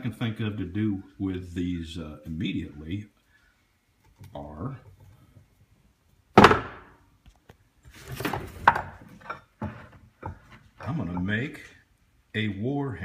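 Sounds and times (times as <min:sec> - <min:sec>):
iron piece thunk on workbench: 0:06.4 - 0:06.9.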